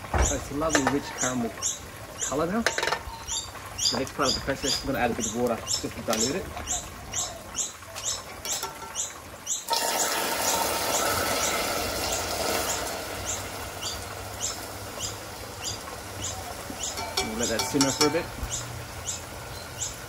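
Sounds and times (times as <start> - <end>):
caramel sizzling and bubbling: 0.0 - 20.0
bird chirping: 0.1 - 10.1, 11.0 - 20.0
water poured into saucepan: 9.6 - 14.8.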